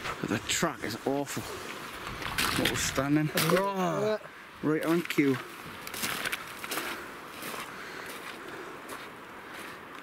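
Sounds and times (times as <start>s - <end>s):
boots crunching through slushy snow: 5.9s - 9.8s.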